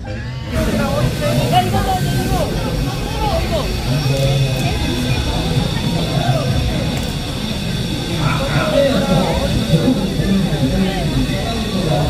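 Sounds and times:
crowd voices: 0.0 - 12.0
low mechanical rumble: 0.0 - 12.0.

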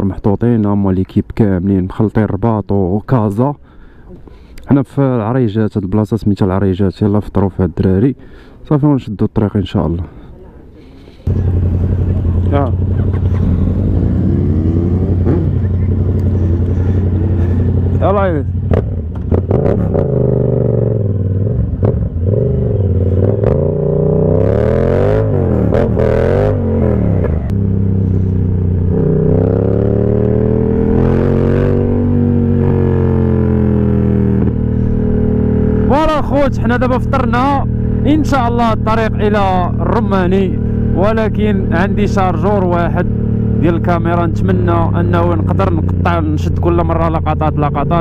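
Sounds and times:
motorcycle engine revving: 11.3 - 48.0.

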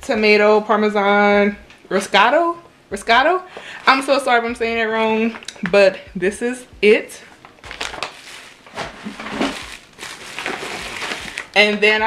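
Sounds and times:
packaging rustling and crinkling: 7.4 - 11.6.

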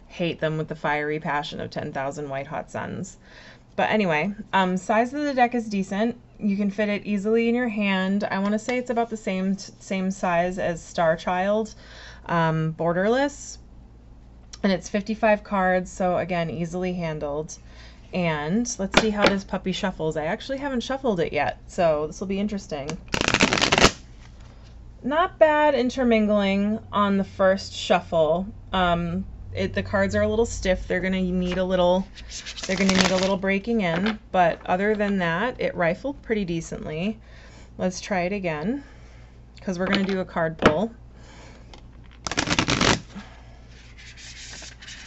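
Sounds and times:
cards being riffle-shuffled: 23.0 - 24.4, 32.2 - 33.4, 42.1 - 43.2, 43.8 - 45.0.

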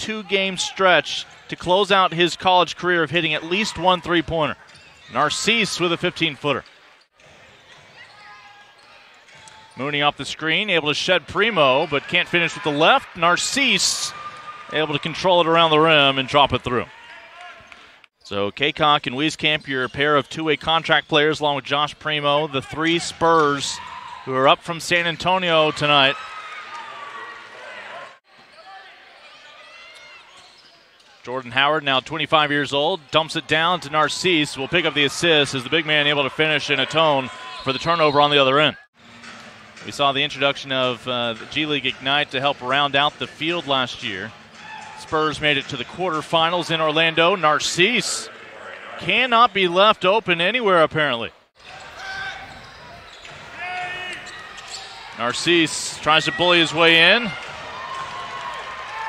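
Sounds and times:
arena background noise: 0.0 - 59.0
players calling out: 0.0 - 59.0
shoe squeaks on hardwood: 51.8 - 55.1.

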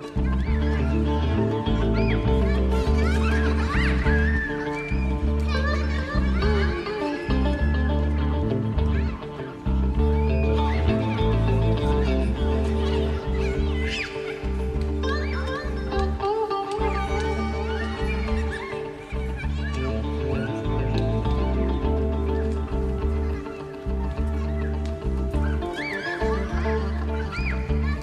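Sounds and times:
children shouting and chattering: 0.0 - 28.0
deep bass notes: 0.0 - 28.0
rock band playing: 0.0 - 28.0.

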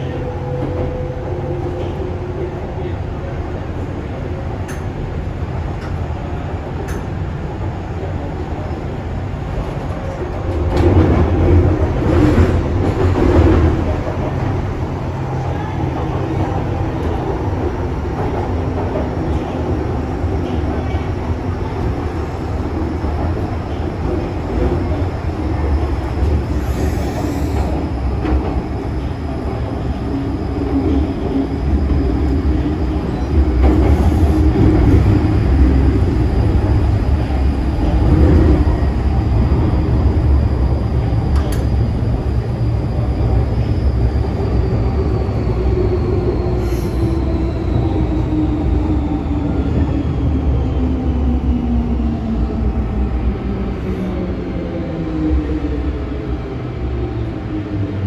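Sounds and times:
train running rumble: 0.0 - 58.0.

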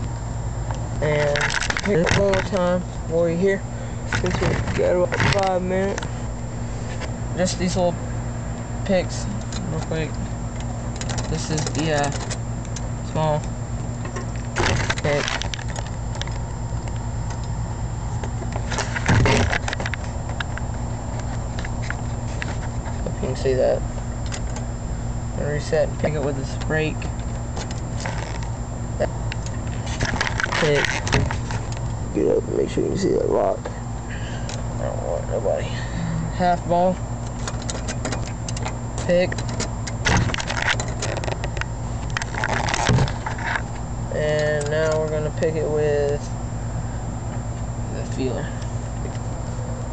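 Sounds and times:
low hum: 0.0 - 49.9
lock pick ticking and scraping: 9.3 - 17.6, 37.2 - 43.8
lock rattling: 10.9 - 12.9, 37.2 - 43.6.

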